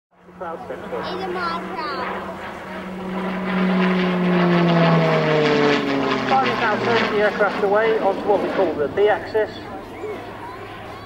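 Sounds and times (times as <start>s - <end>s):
turboprop aircraft passing: 0.1s - 11.0s.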